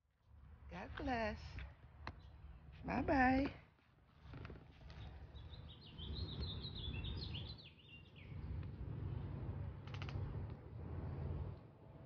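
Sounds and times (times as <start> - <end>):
songbird chirping: 4.7 - 8.6
steady low rumble: 5.0 - 12.0.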